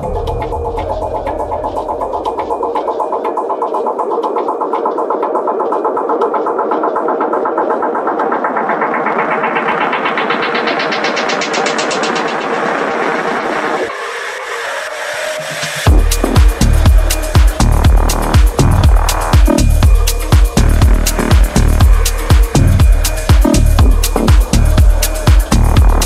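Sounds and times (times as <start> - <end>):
rising filter sweep: 0.0 - 26.0
techno track: 0.0 - 26.0.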